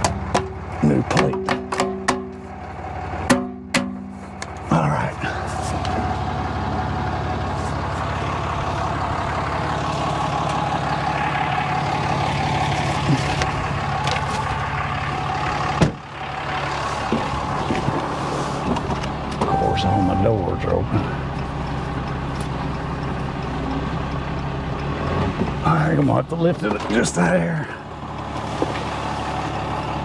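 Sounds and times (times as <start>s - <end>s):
truck engine idling: 0.0s - 30.0s.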